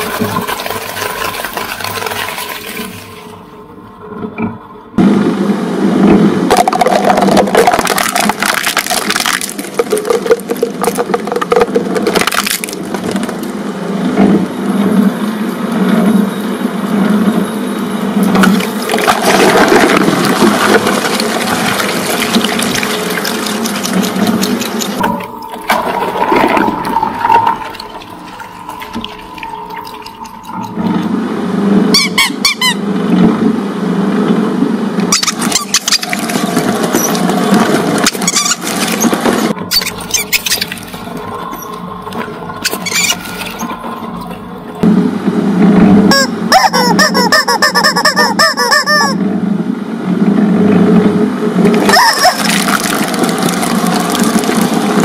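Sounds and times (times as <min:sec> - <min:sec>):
liquid container bursting and splashing: 0:06.5 - 0:13.5, 0:18.4 - 0:31.0, 0:51.7 - 0:55.0
shredder crunching and grinding plastic: 0:06.5 - 0:13.6, 0:18.4 - 0:25.0, 0:35.2 - 0:39.6, 0:51.7 - 0:55.0
quick high squeaks: 0:35.1 - 0:36.2, 0:38.0 - 0:40.8, 0:42.6 - 0:43.8.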